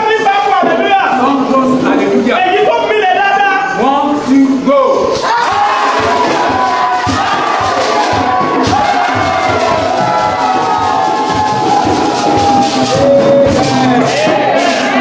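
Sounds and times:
congregation shouting and singing: 0:00.0 - 0:15.0
drum beat: 0:00.5 - 0:02.4, 0:05.1 - 0:15.0.

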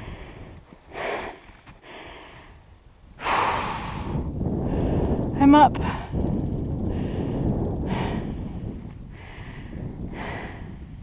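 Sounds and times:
woman breathing heavily: 0:00.0 - 0:11.0.

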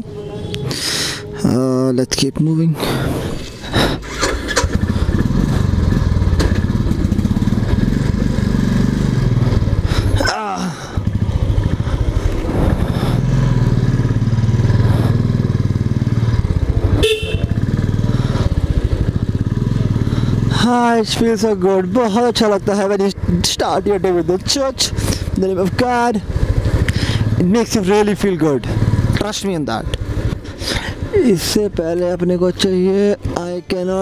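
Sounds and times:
motorcycle engine running: 0:03.9 - 0:33.7
short horn beep: 0:17.0 - 0:17.6.

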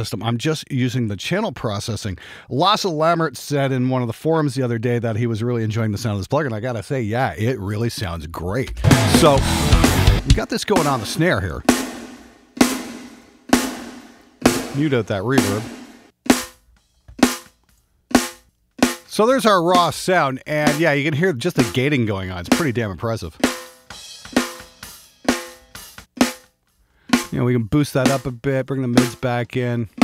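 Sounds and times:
snare drum hits with reverb: 0:11.7 - 0:16.6.

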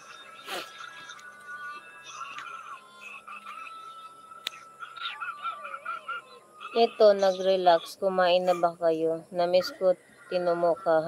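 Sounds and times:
frogs calling: 0:00.0 - 0:11.0.

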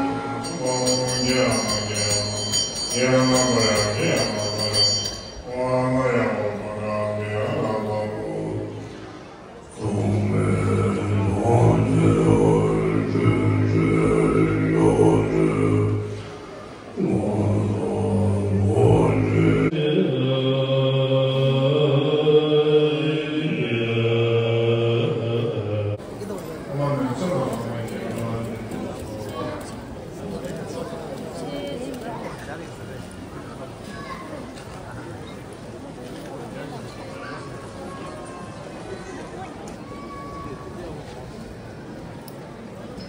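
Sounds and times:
men chanting low drone: 0:00.0 - 0:09.0, 0:09.7 - 0:26.0.

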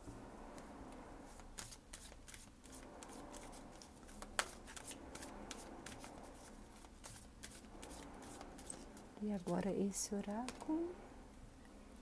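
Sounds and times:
playing cards being shuffled: 0:01.4 - 0:09.6.

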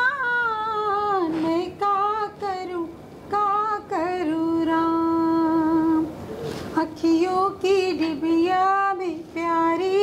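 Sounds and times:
woman singing unaccompanied: 0:00.0 - 0:06.2, 0:06.8 - 0:10.0.

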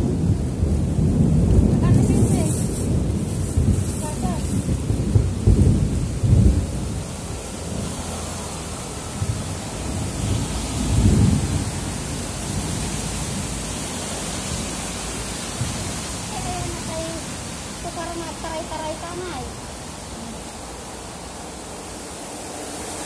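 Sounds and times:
heavy rain falling: 0:00.0 - 0:23.0.

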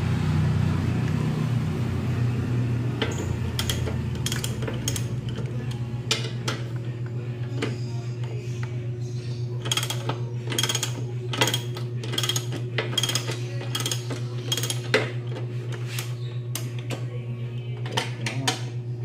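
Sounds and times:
low hum: 0:00.0 - 0:19.0
ratchet wrench clicking: 0:09.6 - 0:14.9.

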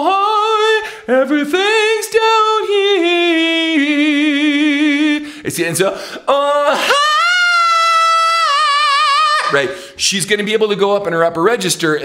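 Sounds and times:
person singing operatically: 0:00.0 - 0:09.8.

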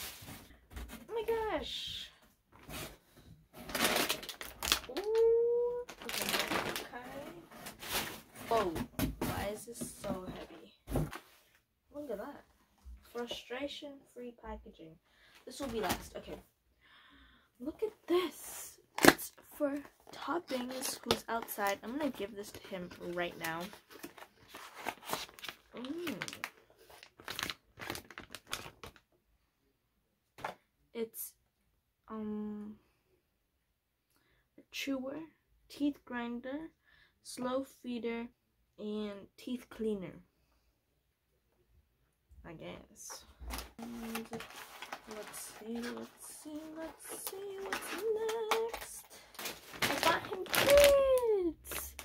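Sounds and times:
plastic packaging crinkling: 0:03.6 - 0:08.8, 0:20.0 - 0:29.0, 0:43.4 - 0:52.0.

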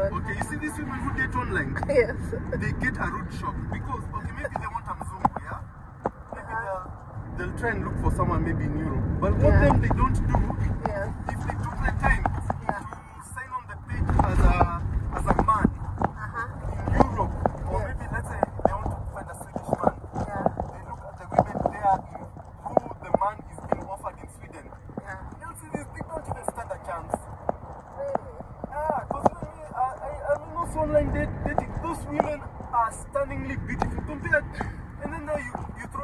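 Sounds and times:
indistinct talking: 0:00.0 - 0:36.0
road noise rumble: 0:00.0 - 0:36.0.

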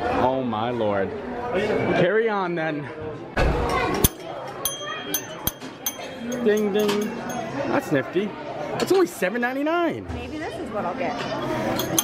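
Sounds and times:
desk call bells dinging: 0:04.1 - 0:07.6.

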